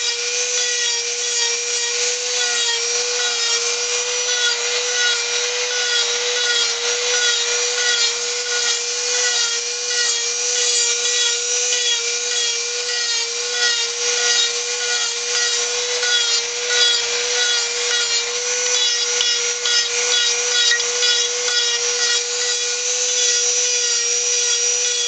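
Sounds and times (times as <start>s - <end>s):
bit grinding into wood: 0.0s - 25.0s
rotary tool whining: 0.0s - 25.0s.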